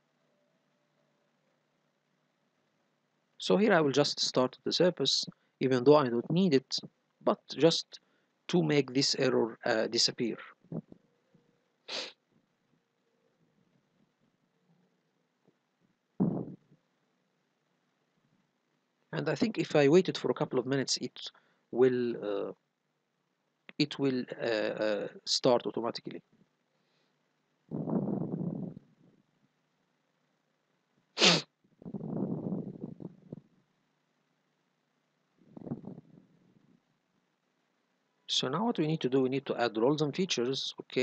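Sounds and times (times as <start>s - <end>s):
faint hum: 0.0s - 41.0s
man's sharp nasal exhale: 11.9s - 12.2s, 31.2s - 31.5s
low rough vocal noise: 16.2s - 16.7s, 27.7s - 29.0s, 31.2s - 33.5s, 35.5s - 36.6s
sharp vocal burst: 31.2s - 31.4s.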